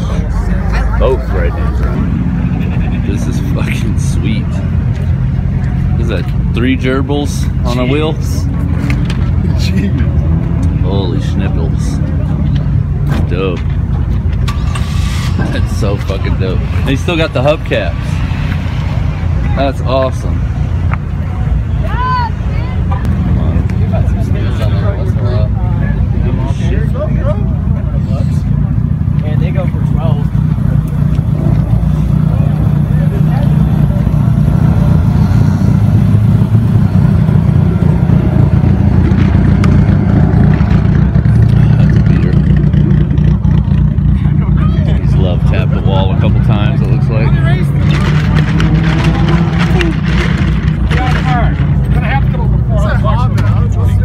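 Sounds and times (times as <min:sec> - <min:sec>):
people talking: 0:00.0 - 0:04.7, 0:05.6 - 0:08.6, 0:09.4 - 0:14.2, 0:15.4 - 0:18.3, 0:19.4 - 0:20.4, 0:21.3 - 0:35.2, 0:41.4 - 0:54.0
car engines droning: 0:00.0 - 0:54.0.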